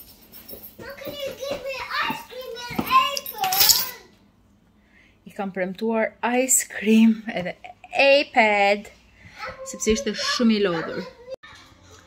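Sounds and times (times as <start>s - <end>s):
young child talking: 0.8s - 4.2s.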